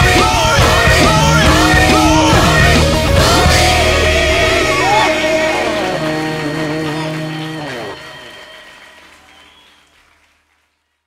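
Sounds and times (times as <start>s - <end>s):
audience applause and cheering: 0.0s - 11.0s.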